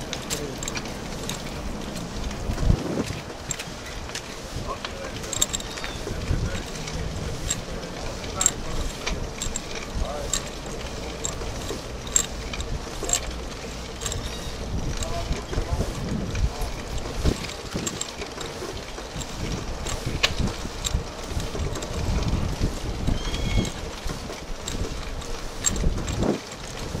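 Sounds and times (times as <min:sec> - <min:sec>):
bicycle clicks and rattles: 0:00.0 - 0:27.0
wind rumbling on microphone: 0:00.9 - 0:27.0.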